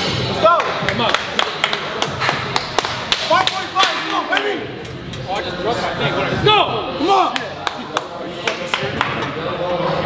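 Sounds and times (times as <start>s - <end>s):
hands slapping and clapping: 0.6s - 5.0s.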